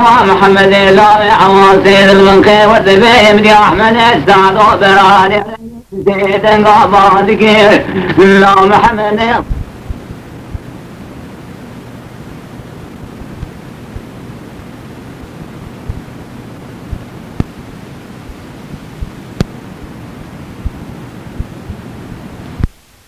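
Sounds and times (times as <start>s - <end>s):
background hiss: 0.0s - 23.0s
low thumps: 9.4s - 10.7s.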